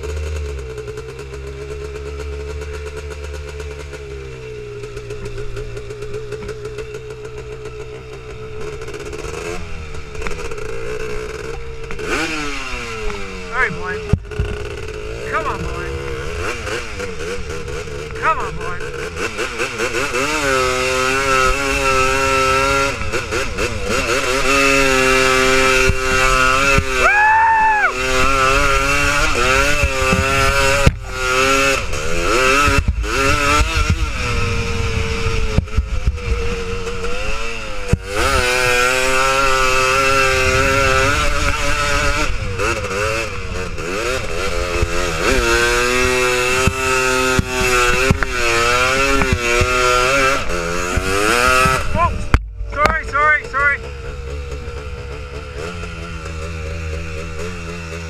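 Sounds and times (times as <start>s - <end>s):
quad bike engine revving: 0.0s - 58.0s.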